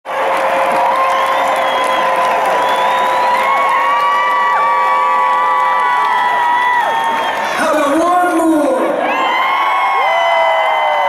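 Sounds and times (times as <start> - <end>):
crowd cheering and whooping: 0.1 - 8.0, 8.6 - 11.0.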